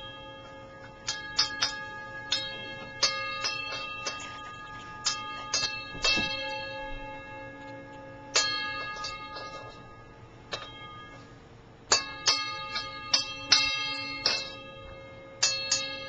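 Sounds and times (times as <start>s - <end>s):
singing bowl ringing: 0.0s - 16.0s.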